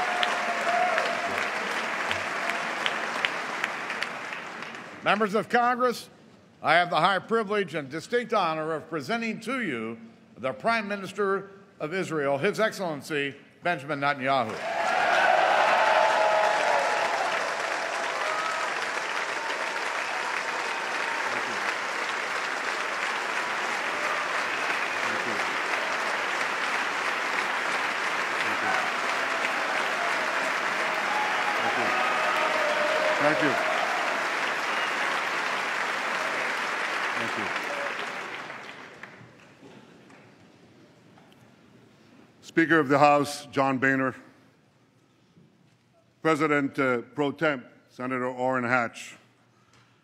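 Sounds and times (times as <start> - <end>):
audience applauding: 0.0 - 5.0, 14.6 - 40.2.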